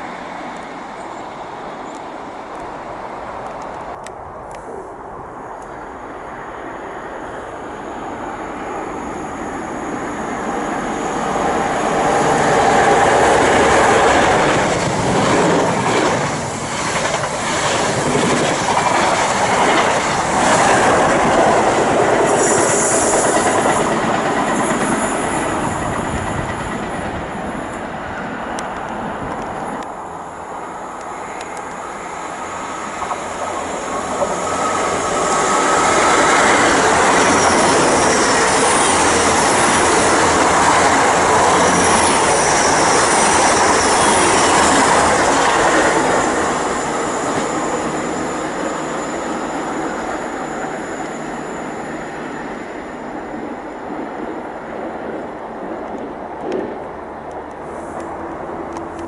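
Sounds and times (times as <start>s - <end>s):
train passing: 0.0s - 59.0s.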